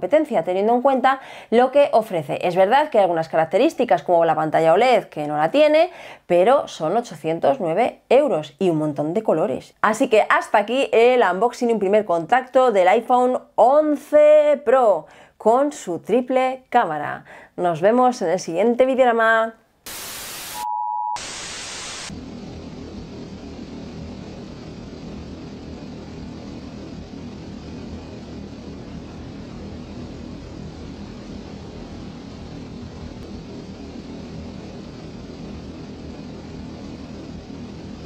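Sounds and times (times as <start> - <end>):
tv static: 19.8 - 22.1
short beep: 20.4 - 21.3
steady droning hum: 22.1 - 38.0.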